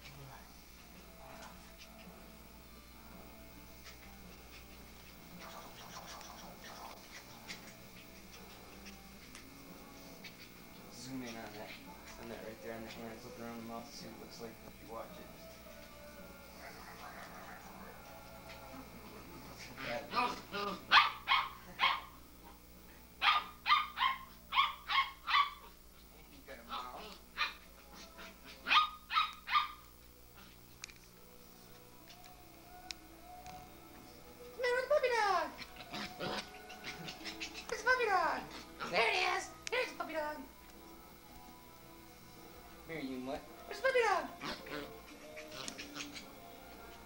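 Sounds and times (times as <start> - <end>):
puppy yapping: 20.1 - 22.2, 23.2 - 25.7, 26.7 - 29.8, 35.5 - 37.9, 44.4 - 46.4
puppy whimpering and yelping: 35.5 - 37.7, 44.4 - 46.4.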